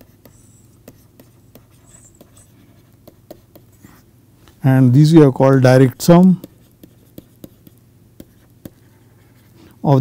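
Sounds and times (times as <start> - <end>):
stylus tapping and scratching: 0.0 - 4.1, 5.4 - 9.6
low steady hum: 0.0 - 10.0.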